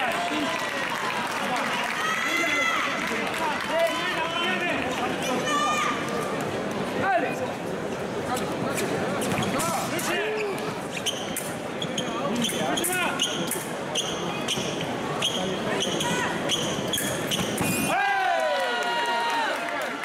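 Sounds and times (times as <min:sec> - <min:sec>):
crowd noise: 0:00.0 - 0:20.0
shoes squeaking and stamping: 0:10.4 - 0:13.4, 0:14.0 - 0:17.9.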